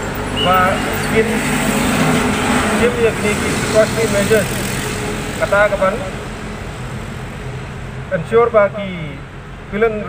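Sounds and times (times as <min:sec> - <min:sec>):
road traffic and engines: 0:00.0 - 0:10.0
man speaking: 0:00.4 - 0:01.6, 0:02.7 - 0:04.5, 0:05.4 - 0:06.2, 0:08.1 - 0:10.0.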